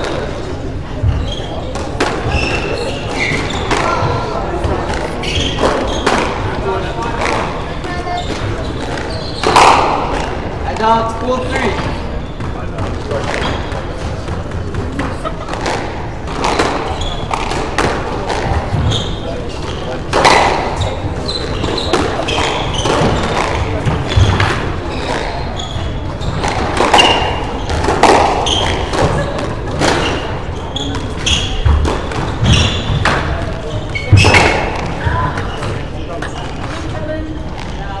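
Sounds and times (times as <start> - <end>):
court shoes squeaking: 0.0 - 38.0
squash ball cracking off rackets: 1.7 - 10.9, 12.4 - 36.8.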